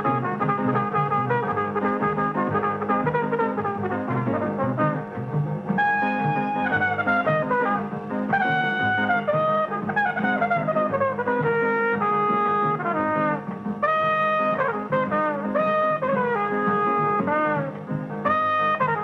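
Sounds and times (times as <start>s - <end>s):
jazz trumpet solo: 0.0s - 19.0s
small jazz band: 0.0s - 19.0s.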